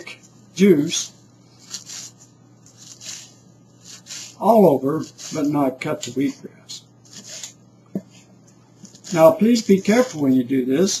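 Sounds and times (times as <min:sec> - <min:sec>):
knife slicing on cutting board: 0:08.8 - 0:10.2.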